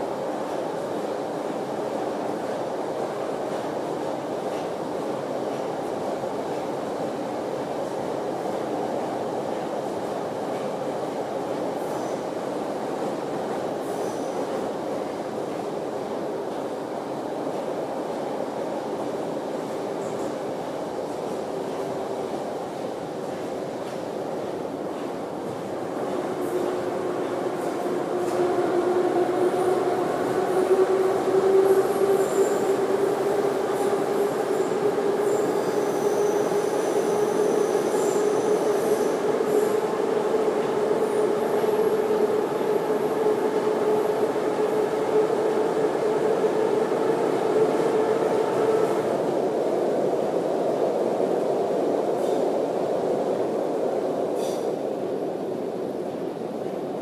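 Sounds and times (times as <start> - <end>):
metro train rumble in tunnel: 0.0 - 57.0.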